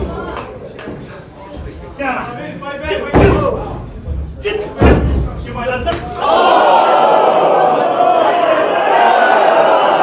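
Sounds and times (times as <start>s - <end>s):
heavy thuds in wrestling ring: 3.1s - 3.8s, 4.8s - 5.5s.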